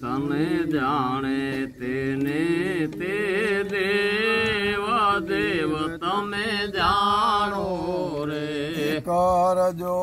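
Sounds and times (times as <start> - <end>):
man singing a devotional hymn: 0.0 - 10.0.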